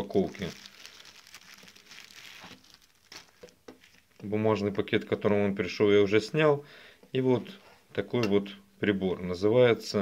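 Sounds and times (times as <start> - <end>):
plastic bag crinkling: 0.0 - 4.3.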